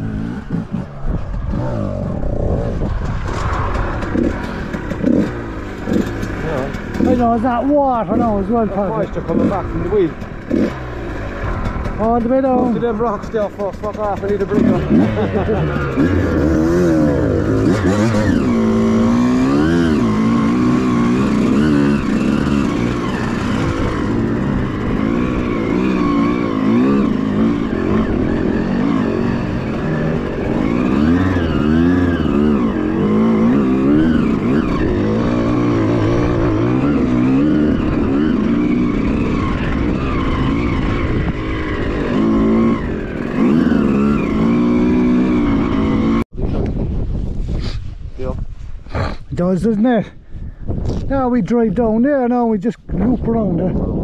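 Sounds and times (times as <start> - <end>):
dirt bike engine revving: 0.0 - 46.3.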